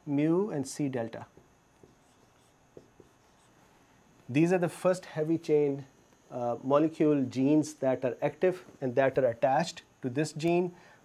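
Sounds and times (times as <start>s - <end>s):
marker drawing on whiteboard: 0.8s - 3.6s
light marker taps: 1.3s - 3.2s.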